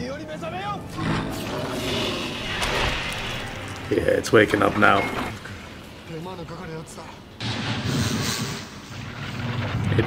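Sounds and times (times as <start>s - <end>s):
deep rumbling: 0.8s - 10.0s.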